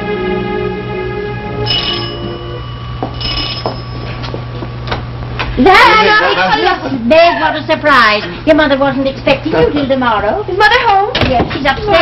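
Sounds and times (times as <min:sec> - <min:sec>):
background music: 0:00.0 - 0:02.8
doorbell ringing: 0:01.6 - 0:04.4.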